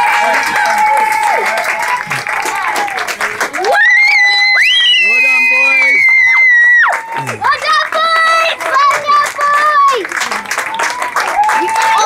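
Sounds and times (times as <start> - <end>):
spectators whooping and cheering: 0.0 - 12.0.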